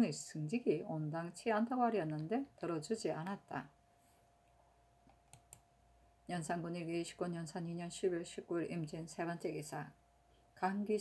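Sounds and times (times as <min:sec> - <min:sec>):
faint steady tone: 0:00.0 - 0:11.0.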